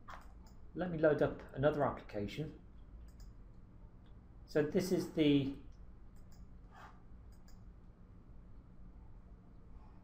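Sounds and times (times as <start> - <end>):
computer mouse clicks: 0.0 - 0.6, 3.0 - 3.4, 6.1 - 7.7
room hum: 0.0 - 10.0.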